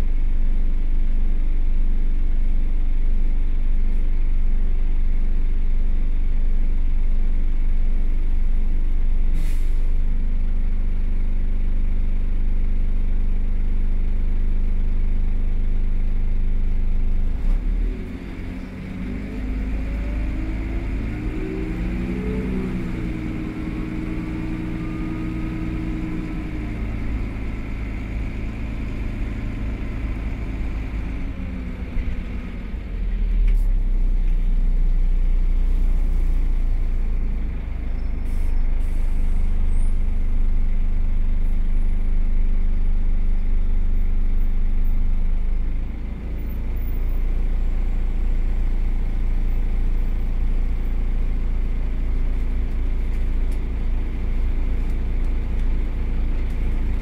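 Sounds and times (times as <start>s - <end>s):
bus engine running: 0.0s - 57.0s
engine and gearbox whine: 0.0s - 57.0s.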